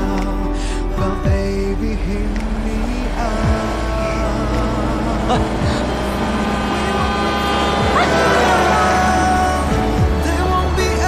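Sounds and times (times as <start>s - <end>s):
background music with held notes: 0.0s - 11.0s
car engine passing: 1.4s - 11.0s.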